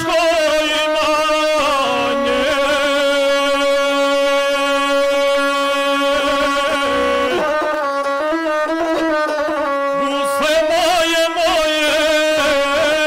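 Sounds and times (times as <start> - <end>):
bowed single-string fiddle: 0.0 - 13.0.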